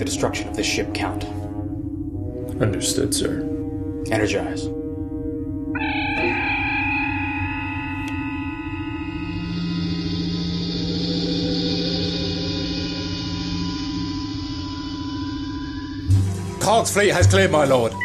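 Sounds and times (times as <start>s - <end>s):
background music: 0.0s - 18.0s
shimmering chiming hum: 0.0s - 18.0s.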